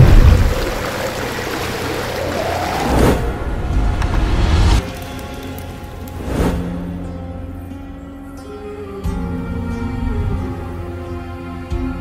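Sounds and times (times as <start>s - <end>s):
deep rumble: 0.0s - 4.8s
music: 3.2s - 12.0s.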